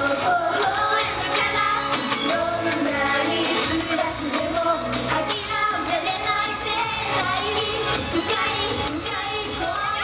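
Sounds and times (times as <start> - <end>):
girls singing pop song: 0.0 - 10.0
pop backing track over pa: 0.0 - 10.0.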